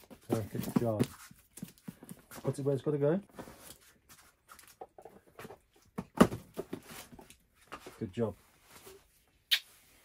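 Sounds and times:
cardboard parcels tapping and rustling: 0.0s - 8.1s.

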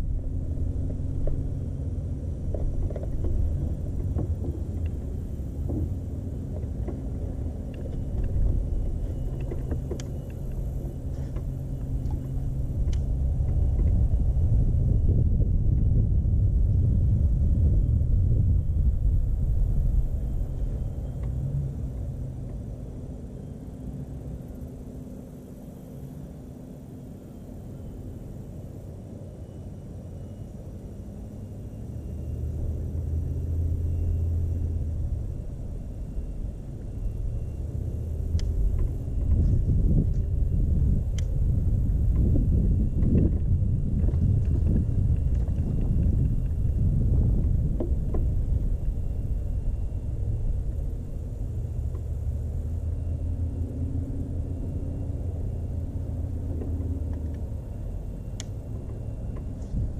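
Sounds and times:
uneven low rumble: 0.0s - 25.4s, 31.6s - 59.9s
electric boat motor humming: 0.0s - 59.9s.

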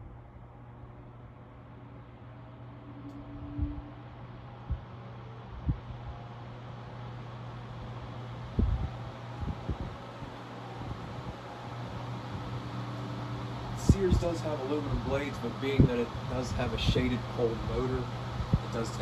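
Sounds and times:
electric fan air rushing: 0.0s - 19.0s
low motor hum: 0.0s - 19.0s
wind buffeting microphone: 8.5s - 11.4s, 13.8s - 14.3s.

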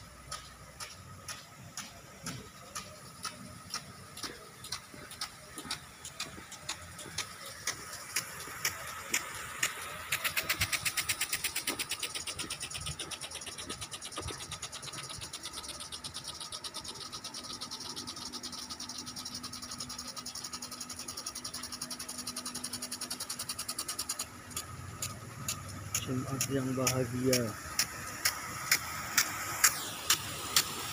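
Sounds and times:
impact sprinkler ticking: 0.0s - 30.9s
water spray hiss: 0.1s - 21.2s, 21.9s - 30.9s.

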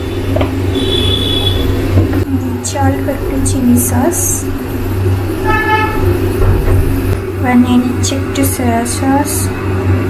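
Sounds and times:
low hum: 0.0s - 10.0s
horn toot: 0.2s - 1.8s, 5.4s - 6.2s.

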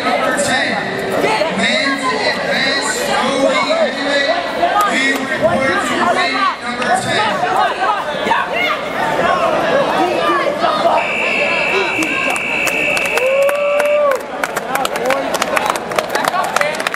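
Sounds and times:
crowd chatter: 0.0s - 16.9s
people clapping: 11.9s - 16.9s.

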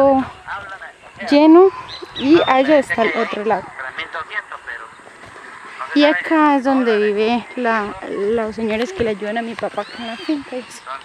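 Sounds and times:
woman speaking: 0.0s - 0.3s, 1.2s - 3.8s, 6.0s - 10.9s.

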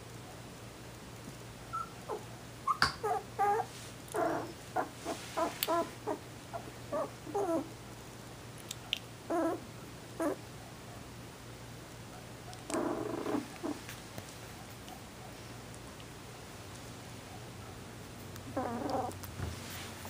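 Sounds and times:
puppies whimpering and squeaking: 1.7s - 7.7s.

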